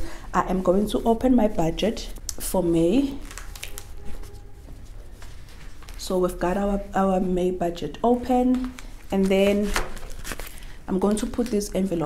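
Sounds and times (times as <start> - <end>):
book pages rustling: 3.1 - 6.7, 8.2 - 12.0.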